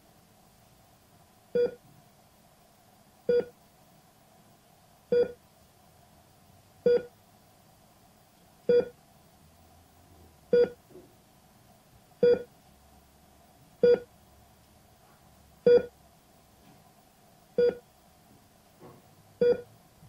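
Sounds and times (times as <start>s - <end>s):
heart monitor beeping: 1.6s - 1.8s, 3.3s - 3.6s, 5.1s - 5.4s, 6.9s - 7.1s, 8.7s - 9.0s, 10.5s - 10.8s, 12.2s - 12.5s, 13.8s - 14.1s, 15.7s - 15.9s, 17.6s - 17.8s, 19.4s - 19.7s.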